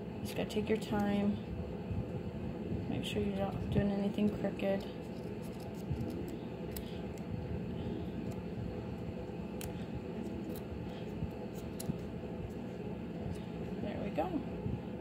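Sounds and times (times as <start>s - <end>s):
scissors snipping paper: 4.1s - 7.3s, 9.6s - 12.1s.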